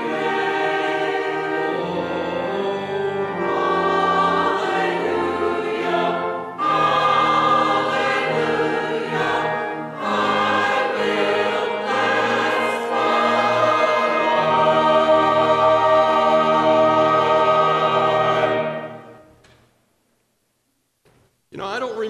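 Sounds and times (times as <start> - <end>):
choir singing in harmony: 0.0 - 19.3.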